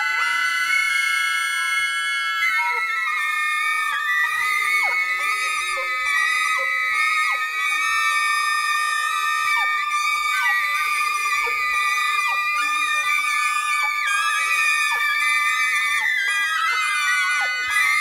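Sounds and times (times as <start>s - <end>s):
woodwind ensemble high sustained notes: 0.0s - 18.0s
falling glissandi: 10.0s - 18.0s.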